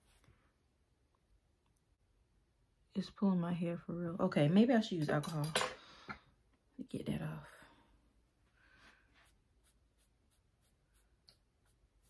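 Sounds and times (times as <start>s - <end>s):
pad rubbing on skin: 9.1s - 12.0s.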